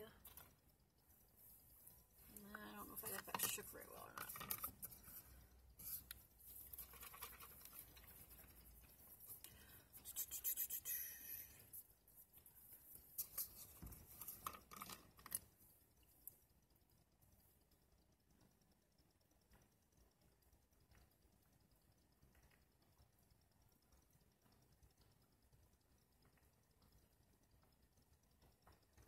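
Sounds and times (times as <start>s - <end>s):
glass bottle clicks and scratching: 2.9s - 5.3s.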